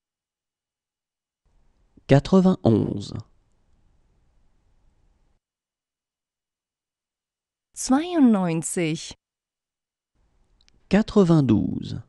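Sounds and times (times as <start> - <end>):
faint room hiss: 1.5 - 5.4, 10.2 - 12.0.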